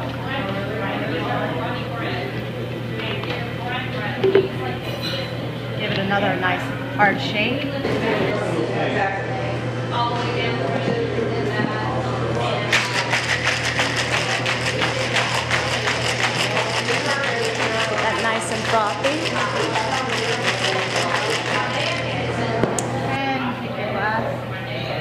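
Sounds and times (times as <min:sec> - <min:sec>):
ice rattling in cocktail shaker: 0:12.8 - 0:22.0.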